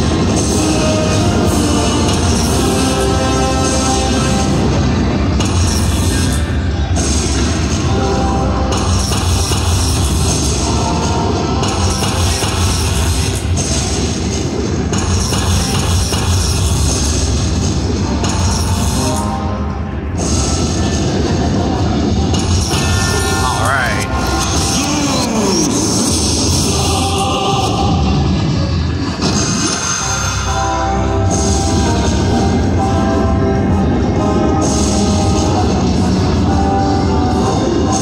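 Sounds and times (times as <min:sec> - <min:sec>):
loud rock music: 0:00.0 - 0:21.7, 0:22.4 - 0:38.0.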